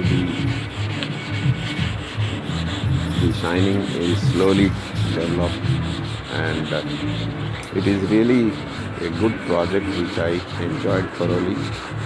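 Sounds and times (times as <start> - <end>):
sandpaper rubbing on metal: 0.0 - 12.0.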